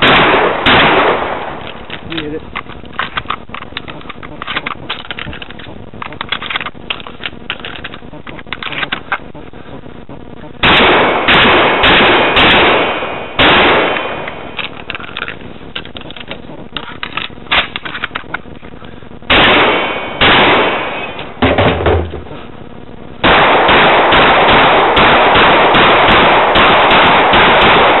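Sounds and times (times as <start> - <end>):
rifle shots: 0.0 - 8.0, 10.6 - 18.4, 19.3 - 22.1, 23.2 - 28.0.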